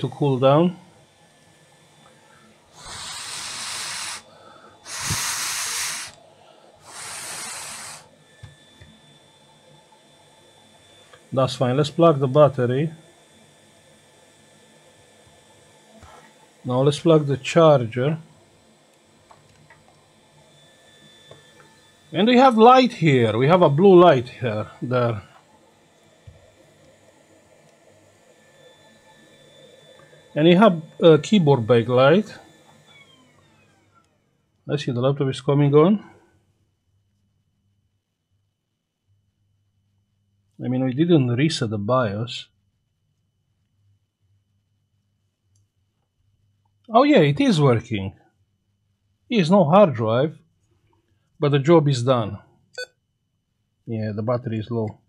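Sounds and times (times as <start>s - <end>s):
hissing air blasts: 2.7s - 6.2s, 6.8s - 8.2s.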